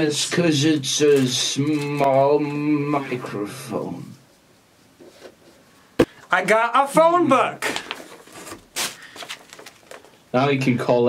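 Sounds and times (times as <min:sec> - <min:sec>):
catalog pages flipping: 0:00.8 - 0:02.8, 0:07.6 - 0:10.2.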